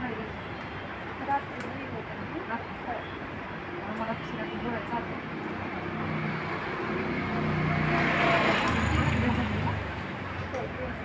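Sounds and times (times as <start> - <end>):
passing vehicle engine hum: 5.6 - 11.0.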